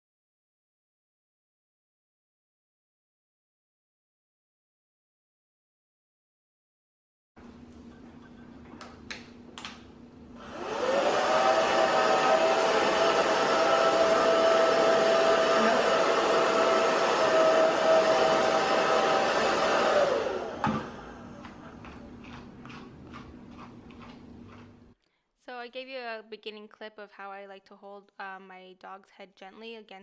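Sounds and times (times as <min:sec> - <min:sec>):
blow dryer motor whine: 0:08.6 - 0:22.2.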